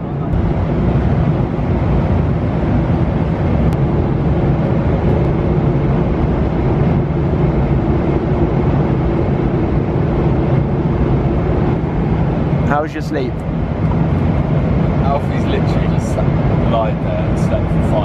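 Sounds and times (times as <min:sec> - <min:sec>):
airliner cabin engine roar: 0:00.0 - 0:18.0.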